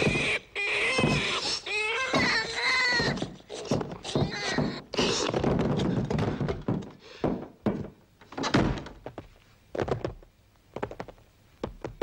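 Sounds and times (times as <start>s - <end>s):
dull thunks and knocks: 2.1s - 9.2s.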